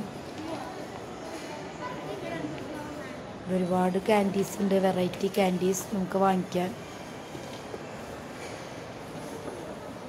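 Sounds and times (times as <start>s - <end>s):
faint distant voices: 0.0s - 6.4s
shopping mall background din: 0.0s - 10.0s.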